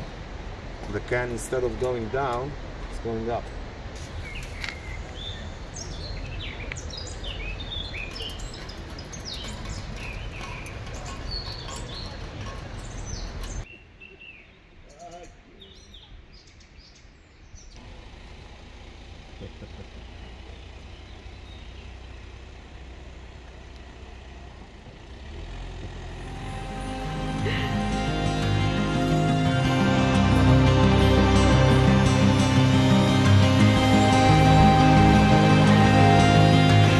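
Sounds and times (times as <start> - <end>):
car approaching: 0.0 - 13.7, 17.8 - 36.9
low outdoor rumble: 0.0 - 13.7, 17.8 - 36.9
small birds chirping: 4.0 - 18.4, 19.1 - 30.6.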